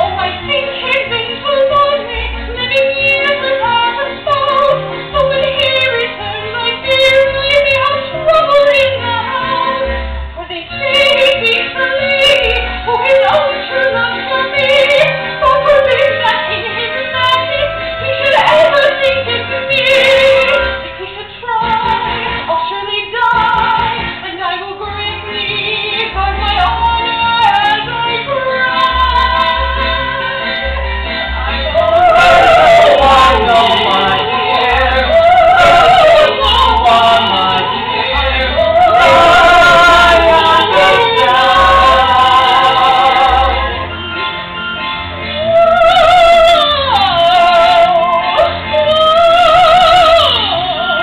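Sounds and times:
woman singing: 0.0s - 30.5s, 31.6s - 43.8s, 45.3s - 51.0s
instrumental accompaniment: 0.0s - 51.0s
voices singing with vibrato: 25.1s - 44.3s.

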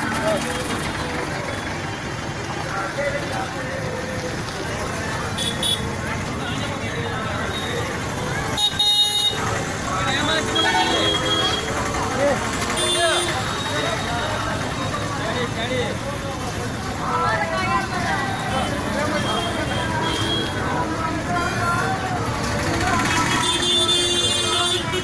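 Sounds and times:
street crowd chatter: 0.0s - 25.0s
traffic noise: 0.0s - 25.0s
vehicle horn blasts: 8.6s - 9.4s.

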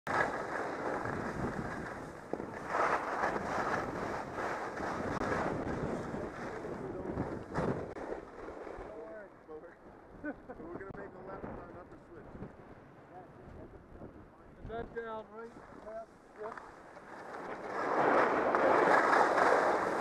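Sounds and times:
skis scraping over snow: 0.1s - 9.2s, 15.4s - 20.0s
wind buffeting microphone: 0.7s - 9.2s, 10.0s - 15.9s.

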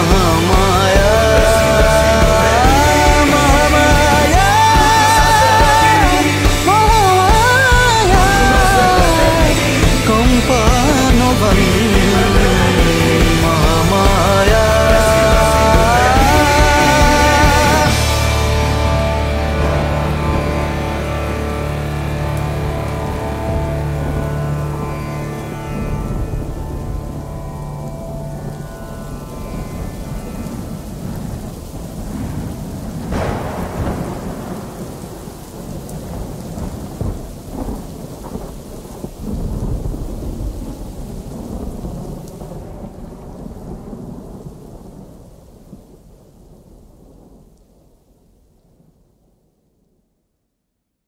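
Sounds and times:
song ending: 0.0s - 31.3s, 33.1s - 35.8s
thunderclap and rumbles: 0.0s - 48.0s
steady rain: 0.0s - 50.0s.

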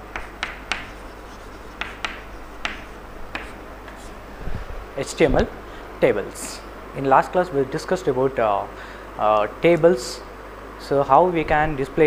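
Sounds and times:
chalk tapping and scratching: 0.0s - 4.2s.

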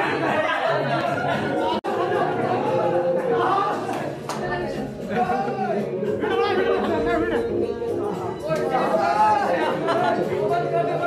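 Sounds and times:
song playing from screen: 0.0s - 11.0s
voices chattering: 0.0s - 11.0s.

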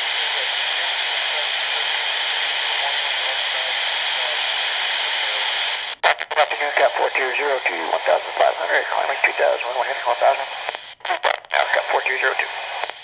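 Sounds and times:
radio static rush: 0.0s - 13.0s
weak radio voice transmission: 0.0s - 13.0s.

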